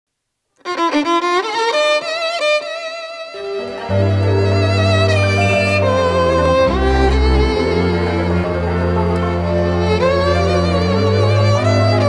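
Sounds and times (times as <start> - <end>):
violin playing ornamented melody: 0.6 - 12.0.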